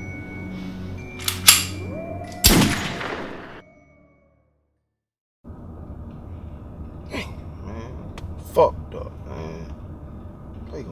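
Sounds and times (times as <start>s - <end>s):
soft background music: 0.0s - 3.1s, 5.5s - 10.9s
handgun cocking clicks: 1.2s - 1.8s.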